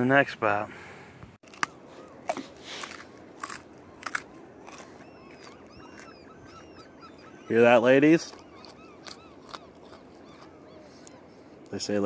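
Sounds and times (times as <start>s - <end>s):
person crunching a raw carrot: 1.4s - 6.1s, 8.3s - 10.5s.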